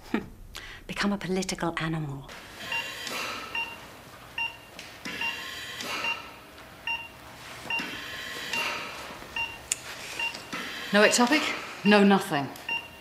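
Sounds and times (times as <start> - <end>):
patient monitor beeping: 2.4 - 13.0.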